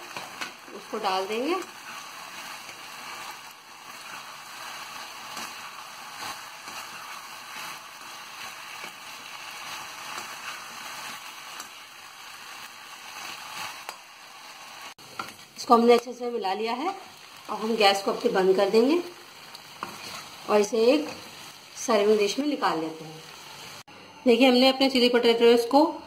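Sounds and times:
metal spoon scraping a pan: 0.0s - 11.8s, 19.8s - 20.4s
food sizzling in a pan: 0.0s - 23.9s.

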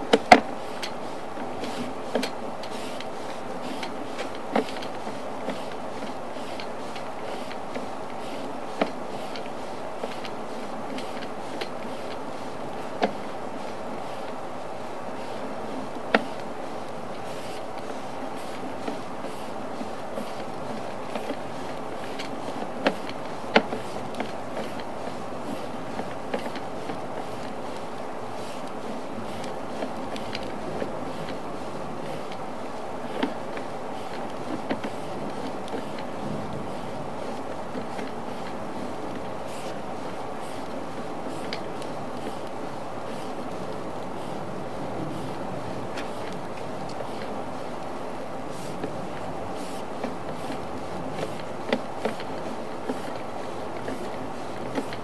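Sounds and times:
push cable rushing through pipe: 0.0s - 55.0s
sharp clicks and knocks: 0.0s - 55.0s.

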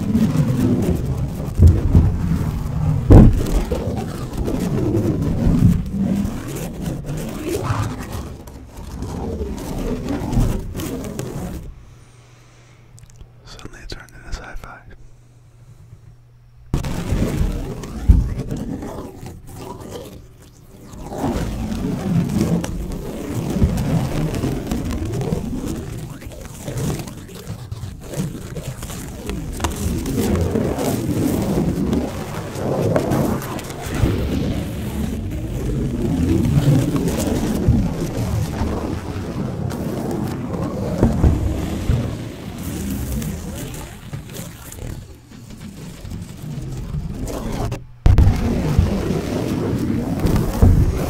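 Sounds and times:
deep thumps on microphone: 1.6s - 4.6s, 40.8s - 45.7s, 48.0s - 49.0s, 50.2s - 51.0s
paper crinkling and rustling: 16.8s - 51.0s.

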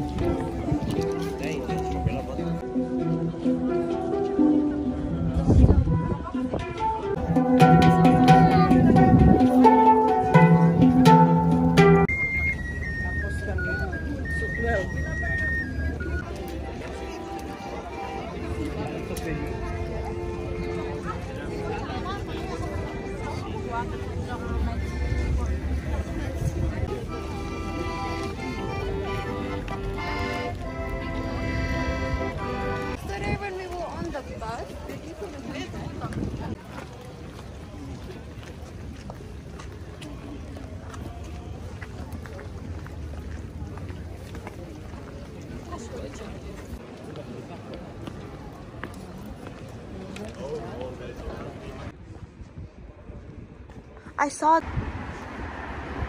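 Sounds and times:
crowd chatter: 0.0s - 56.0s
accordion playing chords: 6.2s - 13.6s, 16.2s - 33.0s
handpan ringing notes: 7.1s - 12.1s.

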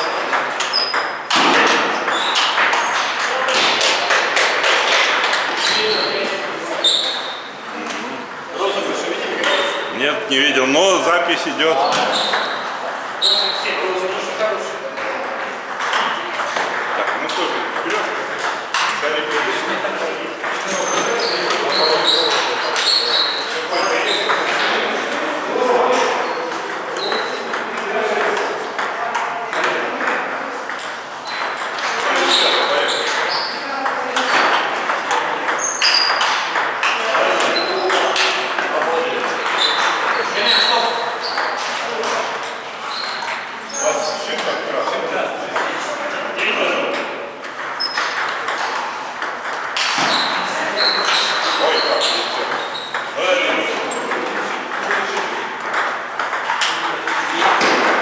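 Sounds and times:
table tennis ball struck by paddles: 0.0s - 5.8s, 15.2s - 19.7s, 25.9s - 40.6s, 46.8s - 58.0s
ball bouncing on table: 0.2s - 5.8s, 15.2s - 19.4s, 33.8s - 40.2s, 46.9s - 58.0s.

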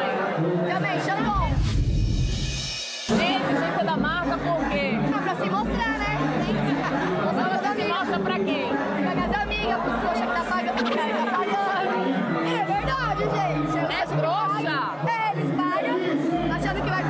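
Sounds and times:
women talking and laughing: 3.1s - 17.0s.

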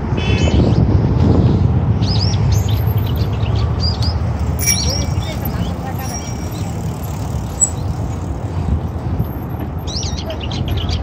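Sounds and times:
bird chirps: 2.1s - 6.8s, 7.5s - 8.0s
faint voices: 4.6s - 8.0s.

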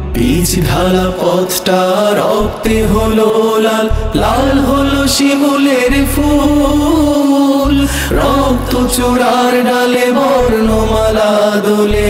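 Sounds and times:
male group chanting in harmony: 0.2s - 12.0s
low drone: 3.8s - 9.2s.

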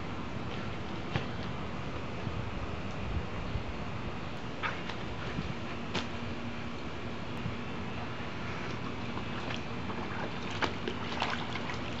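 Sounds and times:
dog splashing in water: 8.7s - 12.0s.

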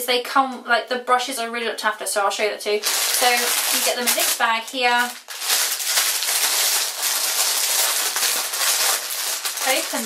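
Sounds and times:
person speaking: 2.7s - 5.2s, 9.6s - 10.0s
cellophane bag crinkling: 2.8s - 10.0s.

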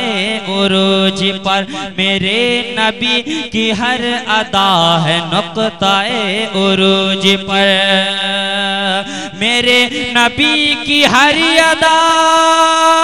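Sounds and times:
man singing devotional song: 0.0s - 13.0s.

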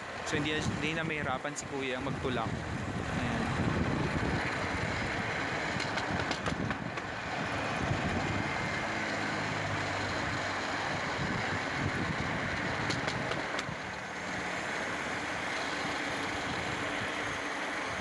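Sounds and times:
rail trolley wheels clattering: 4.0s - 18.0s.

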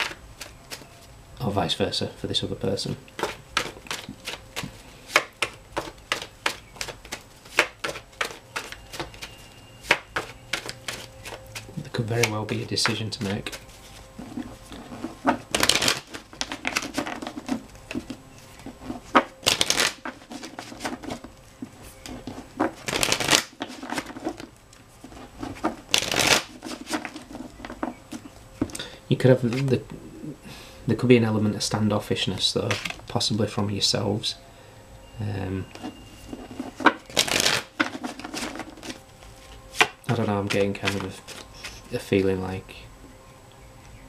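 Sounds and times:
cards being shuffled: 0.0s - 1.1s, 3.1s - 28.8s, 29.4s - 29.8s, 32.6s - 33.1s, 35.8s - 41.9s
sharp card taps: 3.2s - 13.6s.

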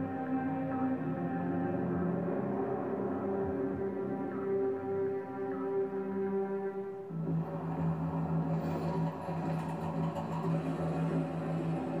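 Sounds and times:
low drone background music: 0.0s - 12.0s.

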